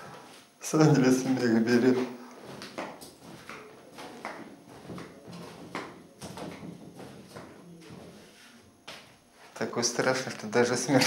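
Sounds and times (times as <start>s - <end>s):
footsteps on wooden floor: 1.8s - 9.3s.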